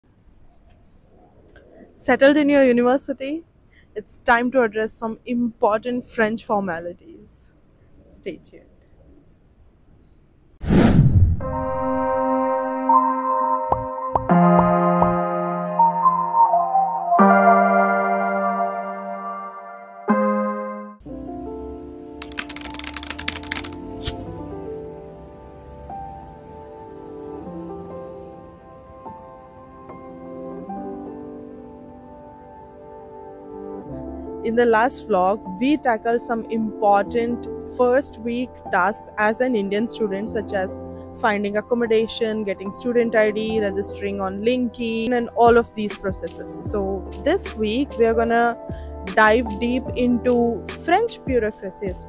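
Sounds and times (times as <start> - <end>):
soft background music: 11.6 - 52.0
keyboard key clicks: 22.2 - 24.2.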